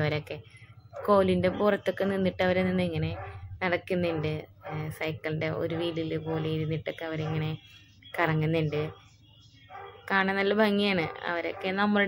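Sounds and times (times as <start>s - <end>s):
woman speaking: 0.0s - 9.2s, 10.0s - 12.0s.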